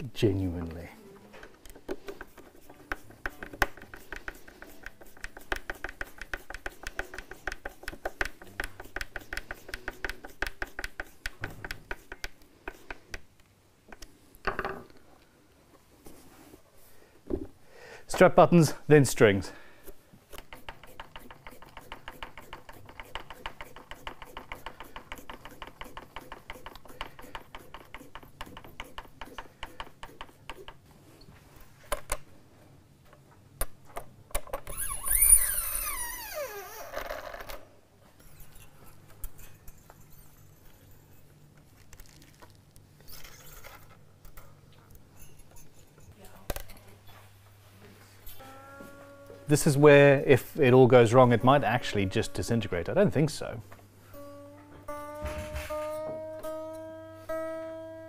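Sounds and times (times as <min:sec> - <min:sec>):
scraping zing falling in pitch: 0:48.3 - 0:50.2.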